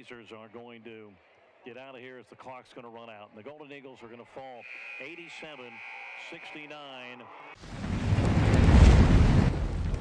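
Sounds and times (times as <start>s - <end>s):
low rumble: 7.6s - 10.0s.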